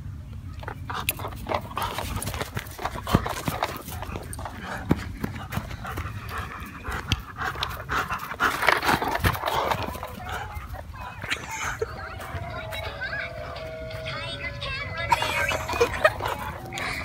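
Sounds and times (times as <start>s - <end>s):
dog panting: 0.6s - 13.6s, 15.1s - 17.0s.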